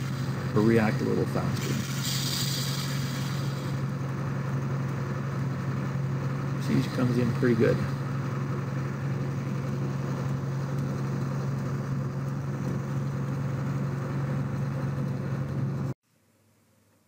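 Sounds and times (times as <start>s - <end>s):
tractor engine humming: 0.0s - 15.9s.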